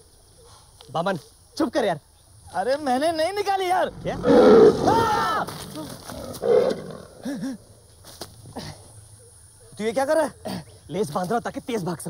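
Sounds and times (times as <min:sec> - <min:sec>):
big cat roaring: 0:03.9 - 0:07.3
person shouting: 0:04.8 - 0:05.5.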